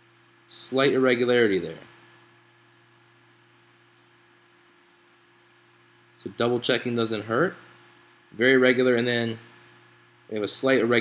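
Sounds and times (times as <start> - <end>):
faint hum with hiss: 0.0 - 11.0.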